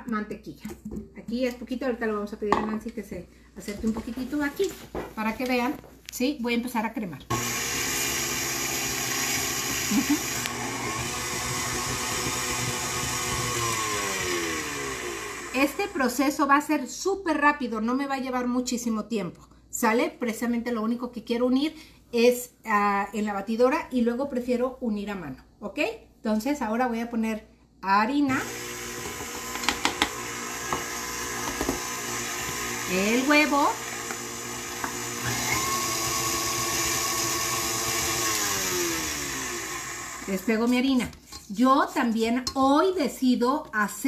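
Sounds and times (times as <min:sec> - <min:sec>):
stand mixer motor whine: 0:07.3 - 0:16.0, 0:28.3 - 0:40.5.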